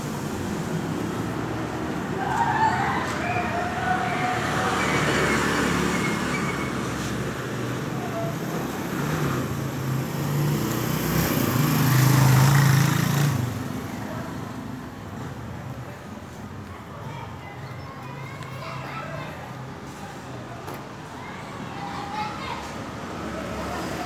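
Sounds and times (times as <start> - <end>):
vehicle engine: 0.0 - 16.5
street traffic noise: 0.0 - 24.0.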